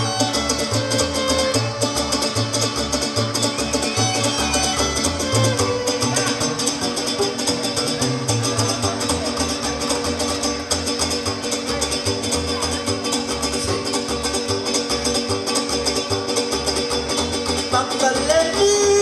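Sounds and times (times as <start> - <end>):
folk string trio playing: 0.0 - 19.0
plucked bass beat: 0.0 - 19.0.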